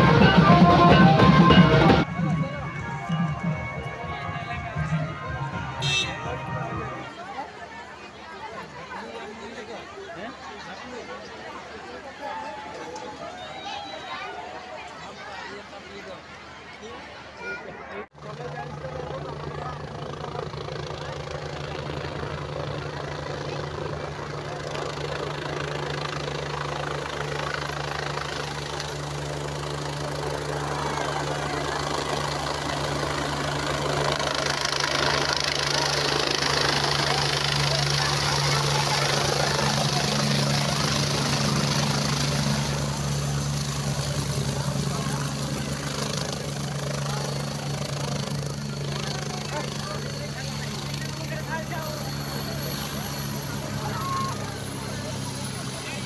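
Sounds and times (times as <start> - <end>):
helicopter landing: 0.0 - 9.7, 18.2 - 56.0
crowd chatter: 0.0 - 56.0.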